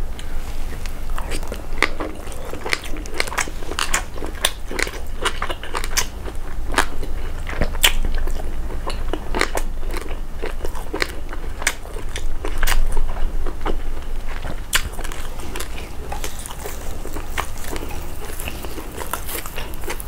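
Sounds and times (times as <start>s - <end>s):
low steady hum: 0.0s - 20.0s
wet chewing sounds: 0.1s - 20.0s.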